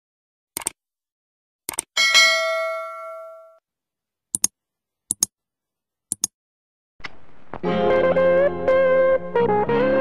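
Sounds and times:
bell ding: 2.0s - 3.6s.

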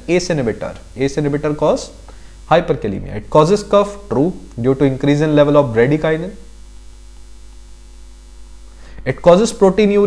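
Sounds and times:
faint hiss: 0.0s - 10.0s
low electrical hum: 0.0s - 10.0s.

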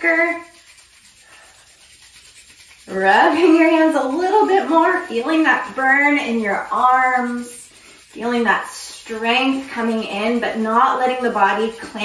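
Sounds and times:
woman speaking: 0.0s - 0.5s, 2.9s - 12.0s
palms rubbing together: 0.0s - 12.0s.

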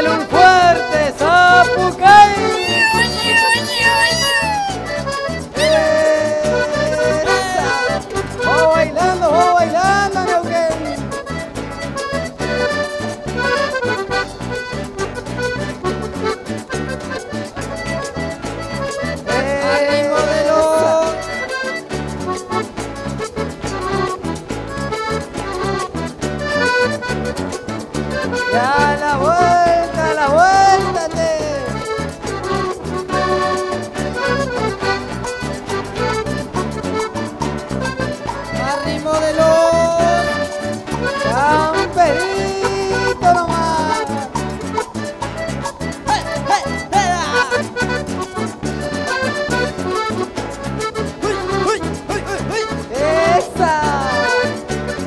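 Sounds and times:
accordion-led country dance music: 0.0s - 55.0s
person shouting: 1.5s - 10.6s, 19.3s - 21.3s, 28.6s - 31.7s, 38.7s - 40.5s, 41.3s - 44.4s, 51.2s - 54.4s.

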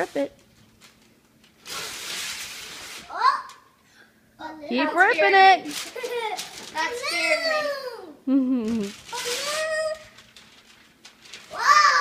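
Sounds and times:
wrapping paper ripping: 0.0s - 3.2s, 5.5s - 7.8s, 8.6s - 12.0s
child crying: 7.0s - 8.2s, 11.5s - 12.0s.

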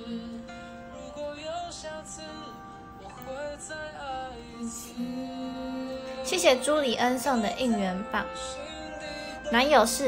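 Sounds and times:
slow song with singing: 0.0s - 10.0s.

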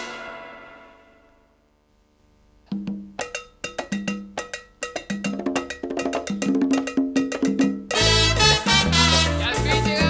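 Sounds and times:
latin drum and cowbell rhythm: 2.7s - 10.0s.

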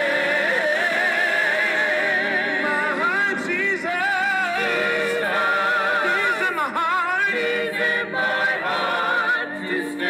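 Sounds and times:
man singing with vibrato: 0.0s - 7.5s.

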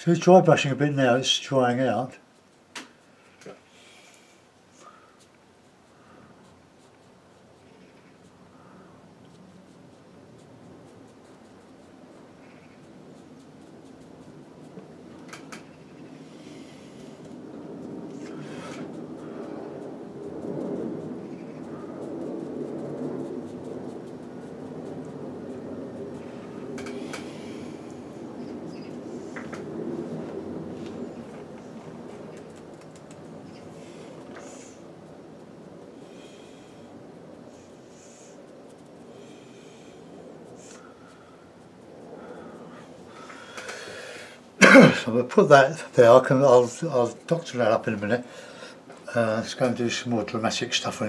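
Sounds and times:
bristle brush scratching on paper: 4.3s - 35.5s.

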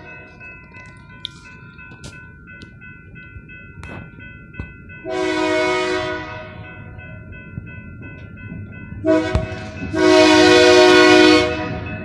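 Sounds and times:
crossing warning bell ringing: 0.0s - 12.0s
locomotive horn blast: 5.1s - 6.6s, 9.0s - 11.9s.

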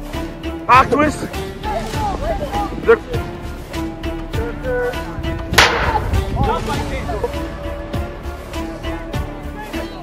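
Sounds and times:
background music: 0.0s - 10.0s
bat hitting plastic ball: 5.6s - 6.0s.

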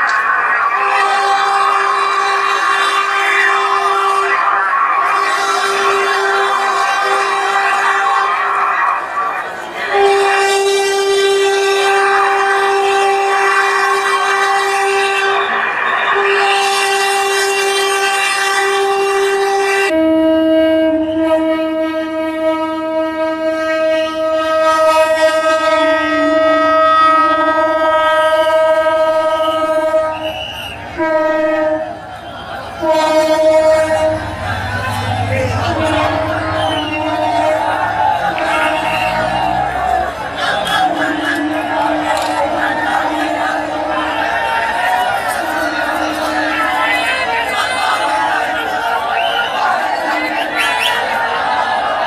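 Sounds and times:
train horn blasts: 0.1s - 50.6s.

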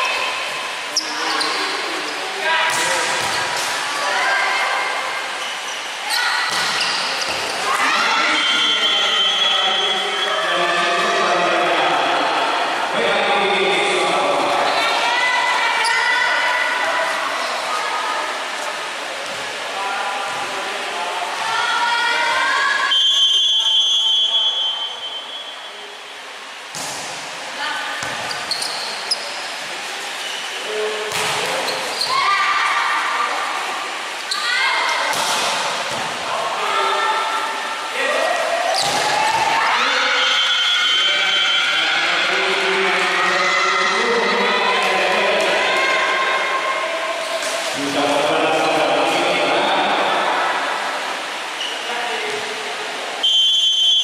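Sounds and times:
volleyball being hit: 31.1s - 31.7s
crowd shouting and chanting: 34.3s - 50.9s
short high whistle: 53.2s - 54.0s.

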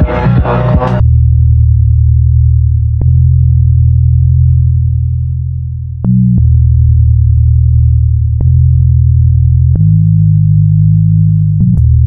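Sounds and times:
synthesizer bass notes: 0.0s - 12.0s.

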